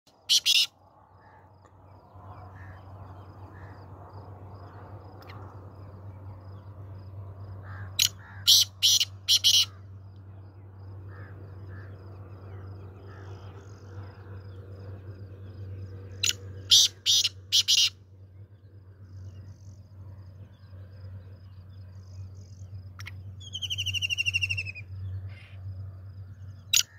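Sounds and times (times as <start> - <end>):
francolin calling: 0.1 - 4.0, 7.6 - 10.0, 16.0 - 18.4, 21.9 - 25.6, 26.4 - 26.9.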